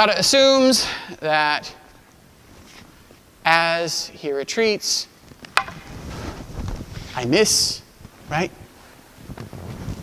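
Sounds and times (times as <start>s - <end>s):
clothing rustle: 2.1s - 3.2s, 5.2s - 7.2s
sharp wooden knock: 5.5s - 5.9s.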